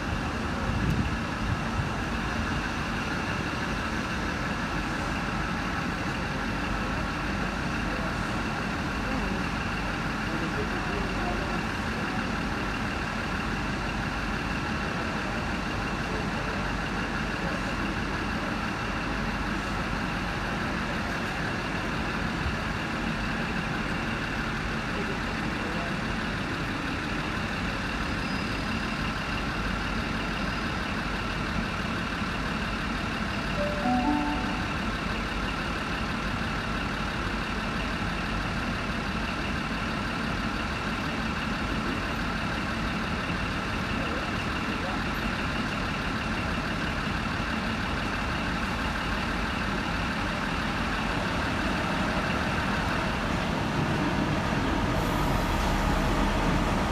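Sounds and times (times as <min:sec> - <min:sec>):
diesel train engine rumble: 0:00.0 - 0:56.9
multi-tone train horn: 0:33.6 - 0:35.1.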